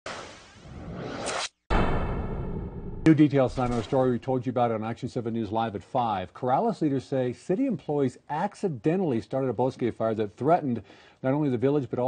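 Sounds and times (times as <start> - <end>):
whoosh: 0.1 - 4.2.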